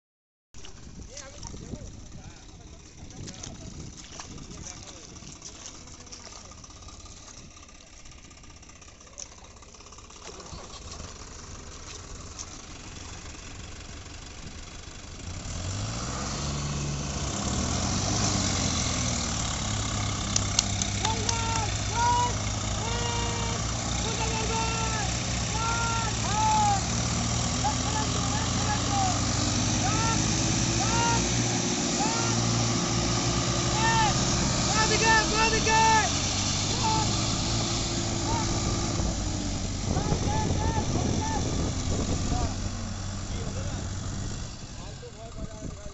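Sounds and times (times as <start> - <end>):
tractor diesel engines revving: 0.7 - 45.9
people shouting: 21.0 - 32.8, 33.6 - 37.3, 38.1 - 38.9.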